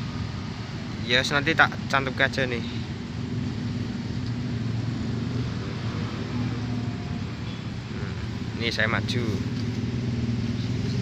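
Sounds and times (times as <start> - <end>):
traffic engine hum: 0.0 - 11.0.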